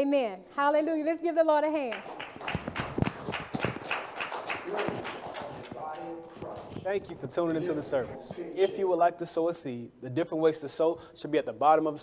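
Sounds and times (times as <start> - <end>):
scattered hand claps: 1.9 - 7.2
person speaking: 4.6 - 9.0.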